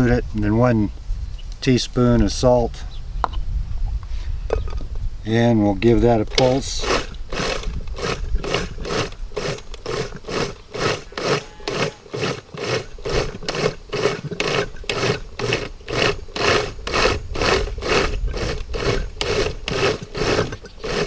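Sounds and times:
blender chopping vegetables: 0:06.4 - 0:21.0.

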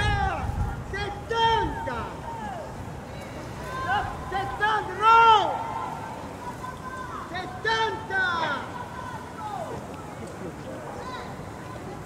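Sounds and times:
distant voices shouting: 0:00.0 - 0:12.0
outdoor background noise: 0:00.0 - 0:12.0.

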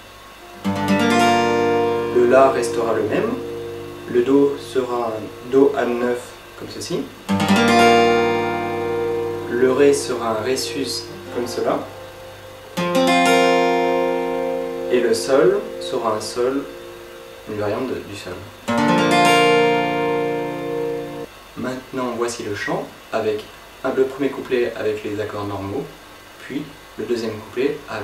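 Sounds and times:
acoustic guitar chord strum: 0:00.4 - 0:21.3.

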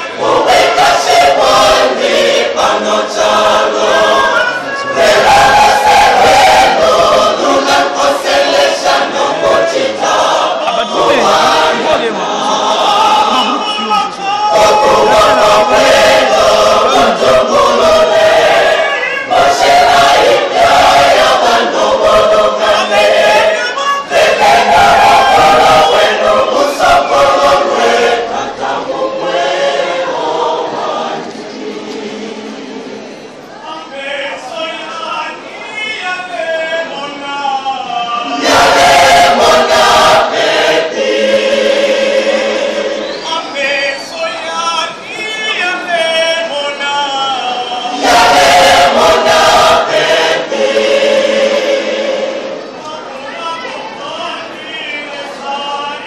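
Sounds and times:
church choir singing: 0:00.0 - 0:33.3, 0:38.2 - 0:44.1, 0:47.1 - 0:52.9.

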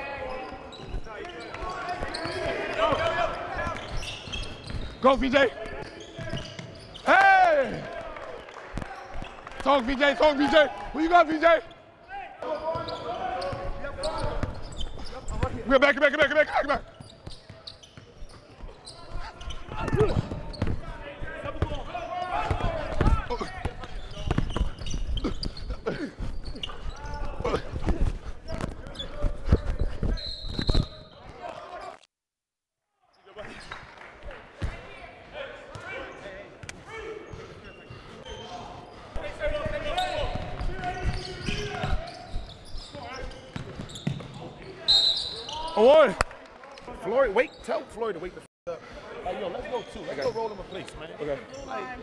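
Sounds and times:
voices echoing in hall: 0:00.0 - 0:32.0, 0:33.0 - 0:52.0.

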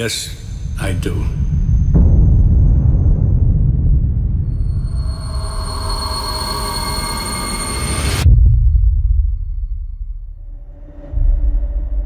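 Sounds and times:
steady whining tones: 0:00.0 - 0:08.3
deep low rumble: 0:00.0 - 0:12.0
high-pitched screeching wash: 0:04.4 - 0:08.3.

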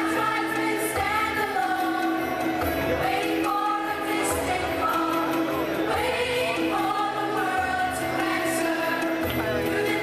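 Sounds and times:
choir singing with rock band: 0:00.0 - 0:10.0.

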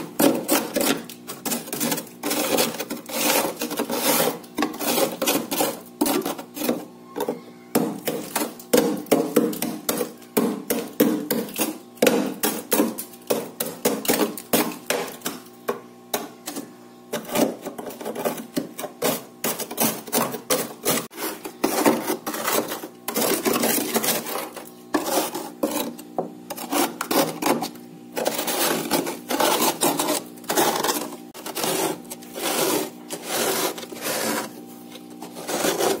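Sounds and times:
spoon scraping frost: 0:00.0 - 0:36.0.

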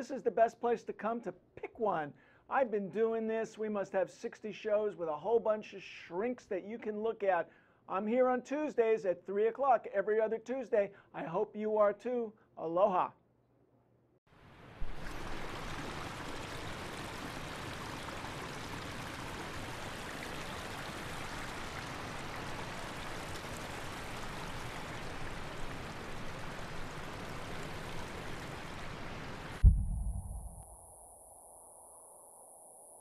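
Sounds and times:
deep boom: 0:29.6 - 0:30.6.

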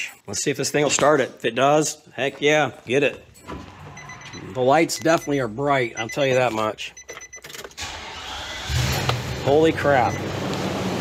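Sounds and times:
van engine cranking and starting: 0:07.2 - 0:11.0.

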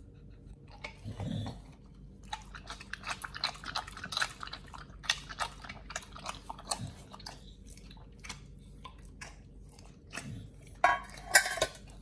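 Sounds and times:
dog chewing and biting meat: 0:00.3 - 0:10.8.

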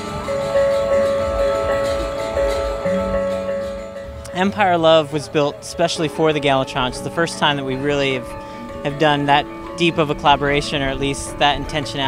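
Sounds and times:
bronze gongs struck by mallets: 0:00.0 - 0:12.0.

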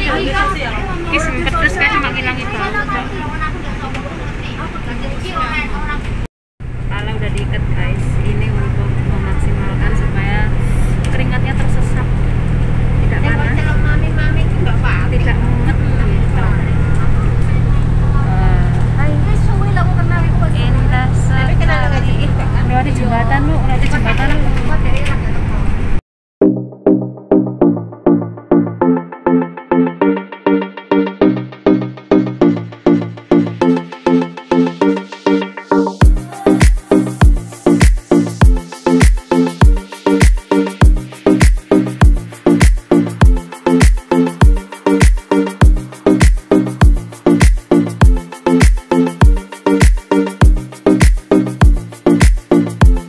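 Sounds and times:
voices talking: 0:00.0 - 0:06.2
bus engine drone: 0:00.0 - 0:26.0.

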